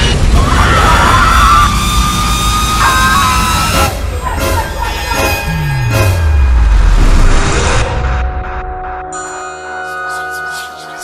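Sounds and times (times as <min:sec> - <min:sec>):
teenagers screaming: 0:00.3 - 0:03.8
deep low rumble: 0:05.3 - 0:09.0.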